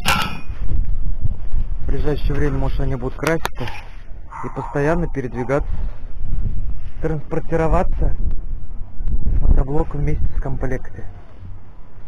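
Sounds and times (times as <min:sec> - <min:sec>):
metallic clang: 0:00.0 - 0:00.6
low rumbling on microphone: 0:00.0 - 0:12.0.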